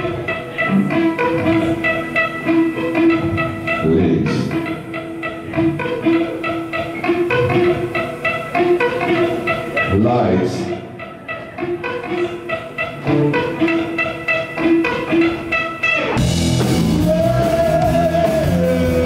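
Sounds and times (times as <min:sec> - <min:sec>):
held sustained note: 0:00.0 - 0:19.0
drums: 0:16.0 - 0:19.0
bass: 0:16.2 - 0:19.0.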